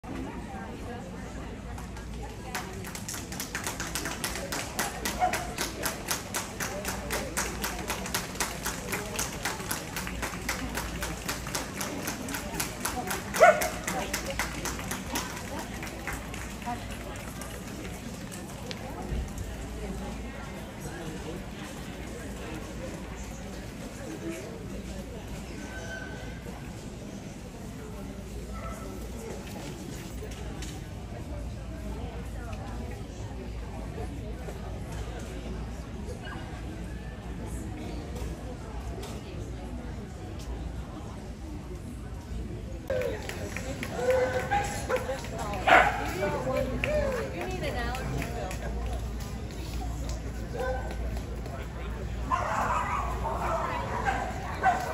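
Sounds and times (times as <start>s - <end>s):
indistinct background chatter: 0.0s - 54.9s
dog barking: 13.4s - 13.8s, 45.7s - 46.1s.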